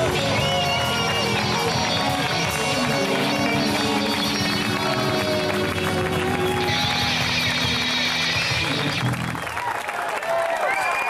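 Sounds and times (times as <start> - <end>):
live blues band playing: 0.0 - 9.4
audience applauding and cheering: 0.0 - 11.0.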